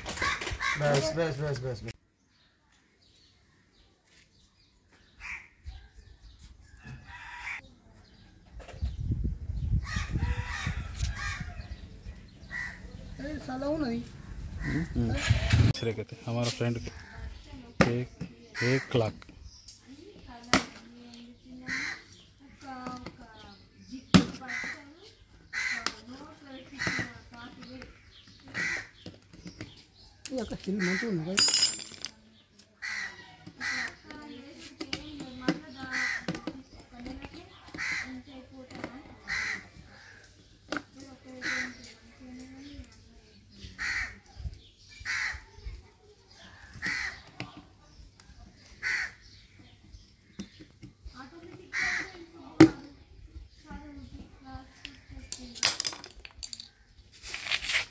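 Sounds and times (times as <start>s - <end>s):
harsh bird calls: 0.0s - 9.0s, 9.6s - 20.3s, 21.1s - 31.4s, 32.4s - 55.6s
crow cawing: 0.2s - 1.0s, 12.4s - 13.0s, 14.6s - 15.4s, 21.6s - 22.2s, 24.5s - 24.9s, 25.5s - 26.0s, 28.5s - 29.0s, 30.8s - 31.2s, 32.8s - 34.0s, 35.9s - 36.4s, 37.8s - 38.2s, 39.2s - 40.3s, 41.4s - 41.8s, 43.8s - 44.2s, 45.0s - 45.5s, 46.6s - 47.3s, 48.8s - 49.3s, 51.7s - 52.2s.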